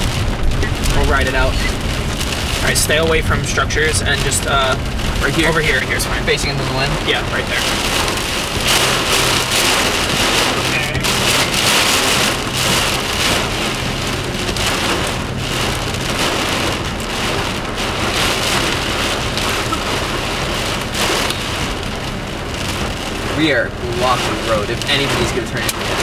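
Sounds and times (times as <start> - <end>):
heavy rain pelting a car: 0.0 - 26.0
strong wind gusts: 0.0 - 26.0.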